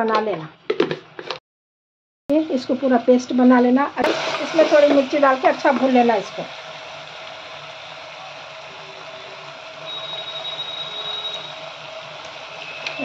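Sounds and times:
meat sizzling in pressure cooker: 2.4 - 13.0
high thin whine: 4.0 - 13.0
steady hum: 4.0 - 13.0.

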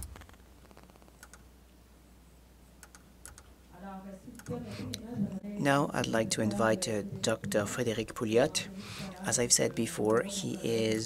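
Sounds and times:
low steady hum: 0.0 - 11.0
person speaking: 3.7 - 11.0.

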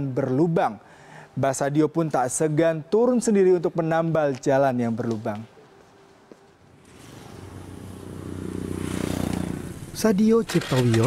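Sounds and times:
motorcycle engine approaching: 6.7 - 11.0.

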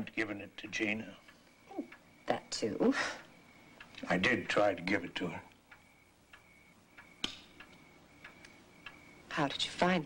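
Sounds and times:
clock ticking: 0.0 - 10.0
sharp click: 7.0 - 8.5.

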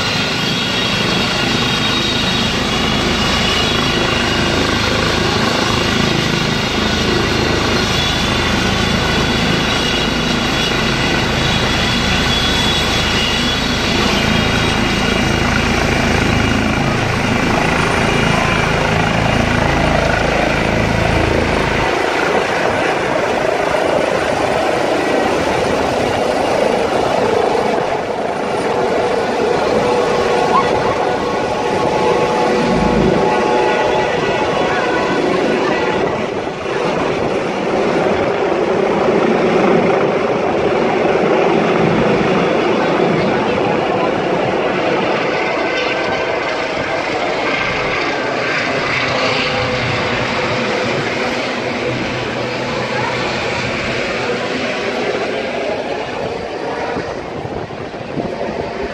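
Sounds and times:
helicopter rotor beat: 0.0 - 58.9
high turbine whine: 0.0 - 58.9.

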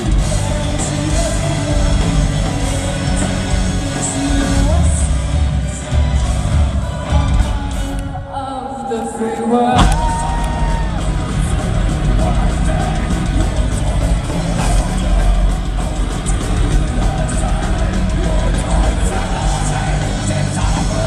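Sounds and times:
drums with heavy bass: 0.0 - 8.3, 9.5 - 21.0
metal band playing live: 0.0 - 8.3, 9.5 - 21.0
distorted electric guitars: 0.0 - 21.0.

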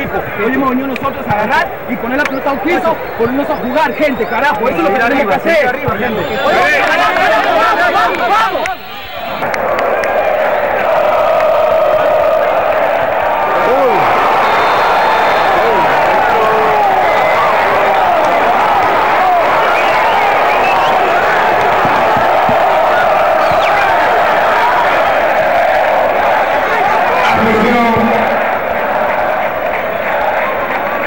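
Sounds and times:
stadium crowd cheering: 0.0 - 31.0.

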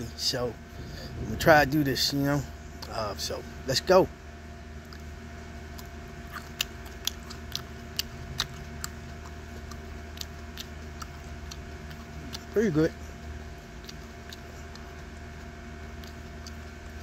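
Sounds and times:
steady background hum: 0.0 - 17.0
person chewing crunchy pepper: 2.5 - 3.4, 4.8 - 17.0.

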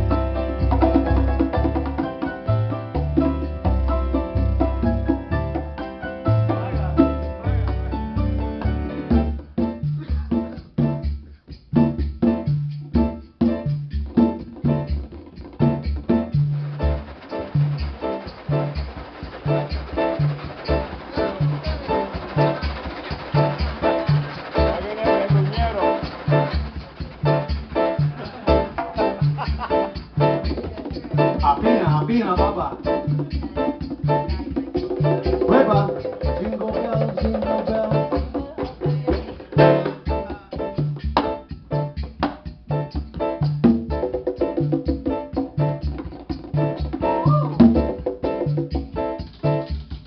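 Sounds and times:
grand piano: 0.0 - 49.8
latin jazz band playing: 0.0 - 50.0.

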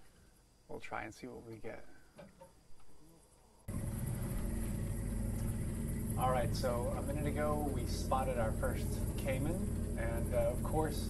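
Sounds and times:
outboard motor running: 3.7 - 11.0.

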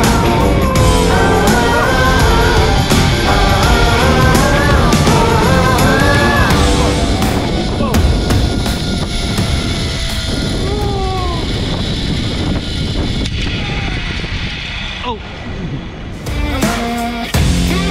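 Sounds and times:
music: 0.0 - 10.6, 16.2 - 17.9
wind buffeting microphone: 0.0 - 16.5
person whooping: 5.8 - 11.7.

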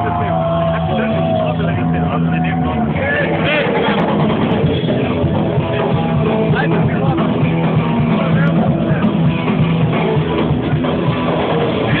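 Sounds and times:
crowd voices and shouts: 0.0 - 12.0.

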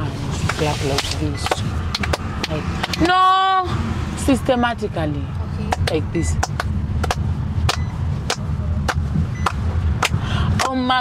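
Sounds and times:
hands clapping: 1.9 - 3.0, 5.7 - 10.8
car cabin rumble: 4.2 - 11.0.

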